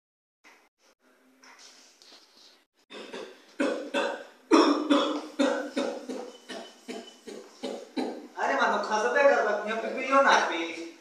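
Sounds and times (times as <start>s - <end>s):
person coughing harshly: 2.9s - 8.3s.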